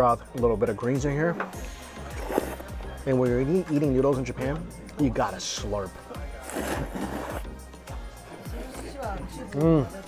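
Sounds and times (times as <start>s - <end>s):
background music: 0.0s - 10.0s
noodles slurped: 1.6s - 3.0s, 6.2s - 9.0s.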